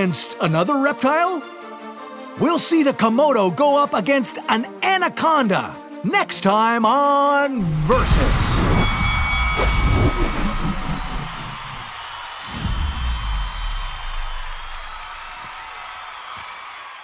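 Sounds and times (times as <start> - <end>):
deep boom: 7.6 - 12.0
ringing tail: 7.6 - 12.2
whooshes: 7.7 - 15.0.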